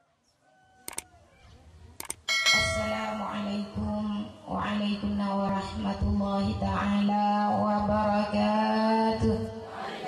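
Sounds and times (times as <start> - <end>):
ringing bell chime: 2.3 - 3.7.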